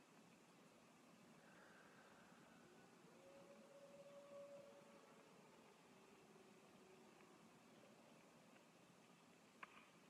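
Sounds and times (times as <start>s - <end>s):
faint steady tone: 0.0s - 10.0s.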